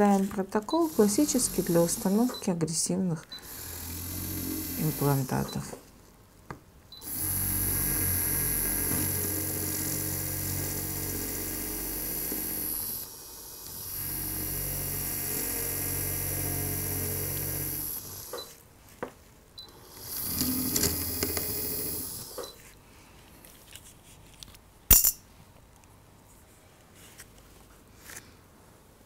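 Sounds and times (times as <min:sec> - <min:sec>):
dental drill motor whine: 0:00.7 - 0:02.5, 0:03.3 - 0:05.8, 0:07.0 - 0:18.5, 0:19.7 - 0:22.6.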